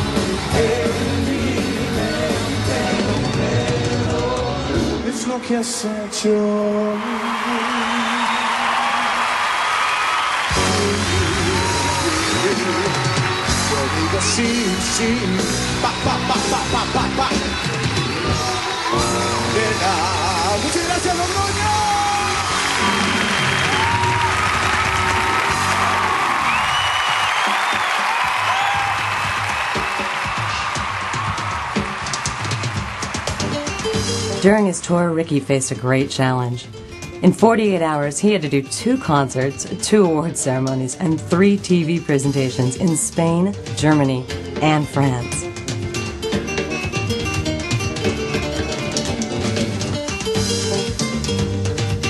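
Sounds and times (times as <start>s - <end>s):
live band playing: 0.0s - 5.4s, 10.4s - 52.0s
crowd cheering and screaming: 5.9s - 34.1s.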